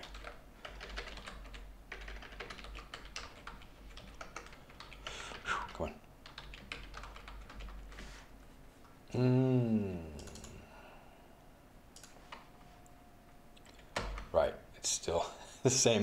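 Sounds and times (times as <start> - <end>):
keyboard typing clicks: 0.0 - 5.4, 6.2 - 7.9, 10.2 - 10.6, 11.9 - 12.4, 13.6 - 14.3.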